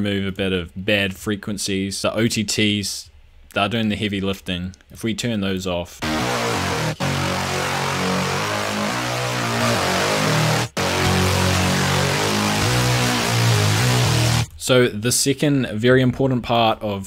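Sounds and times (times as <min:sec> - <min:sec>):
distorted bass synth riff: 0:06.0 - 0:14.5.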